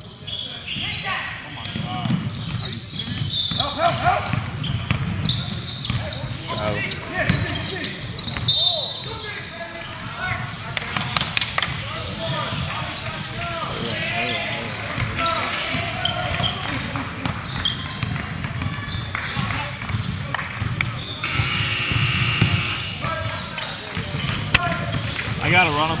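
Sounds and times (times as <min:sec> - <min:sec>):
chatter and calls of people: 0:00.0 - 0:26.0.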